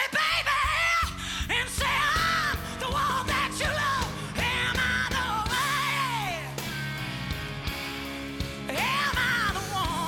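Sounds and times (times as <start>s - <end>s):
woman singing with vibrato: 0.0s - 6.6s, 8.7s - 10.0s
blues-rock band playing: 0.5s - 10.0s.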